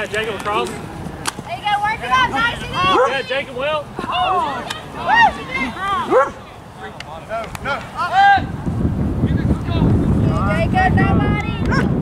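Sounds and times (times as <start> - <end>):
wind buffeting microphone: 0.0 - 12.0
dog barking: 2.9 - 3.2, 6.1 - 6.4.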